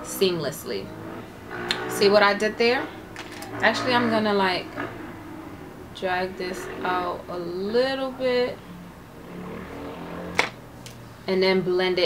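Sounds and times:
faint low background sound: 0:00.0 - 0:12.0.

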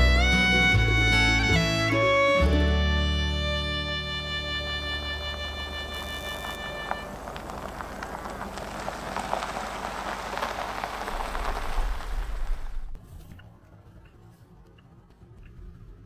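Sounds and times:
background music: 0:00.0 - 0:06.9
low engine rumble: 0:00.0 - 0:16.0
tyres hissing on asphalt: 0:04.3 - 0:12.9.

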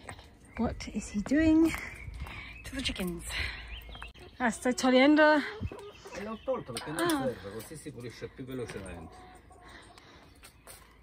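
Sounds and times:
chickens clucking: 0:03.7 - 0:11.0
man talking: 0:06.1 - 0:09.3.

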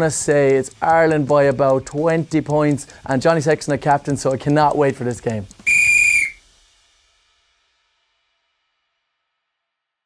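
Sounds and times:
high-pitched whistle-like signal tone: 0:05.7 - 0:06.4.

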